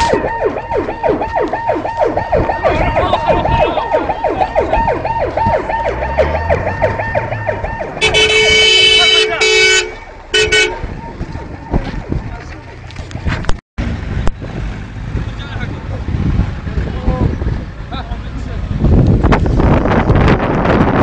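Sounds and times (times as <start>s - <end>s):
siren fast yelp: 0.0s - 9.2s
vehicle horn blasts: 8.0s - 10.8s.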